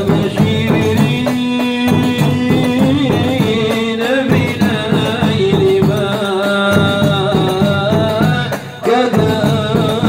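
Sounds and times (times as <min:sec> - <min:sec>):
hand drum beat: 0:00.0 - 0:10.0
man singing devotional chant: 0:00.0 - 0:10.0.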